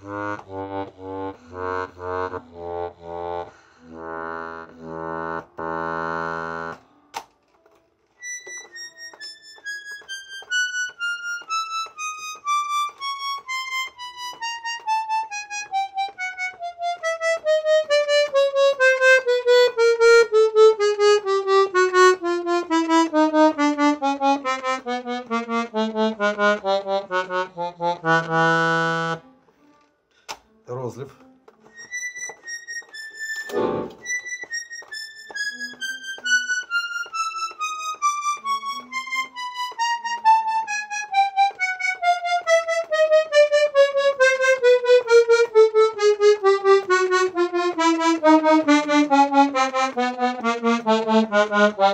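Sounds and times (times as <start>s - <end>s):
button accordion playing a scale: 0.0s - 6.8s, 8.2s - 29.3s, 31.7s - 51.9s.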